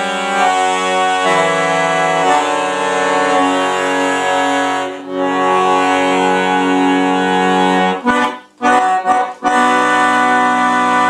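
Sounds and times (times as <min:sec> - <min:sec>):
accordion sustained chord: 0:00.0 - 0:11.0.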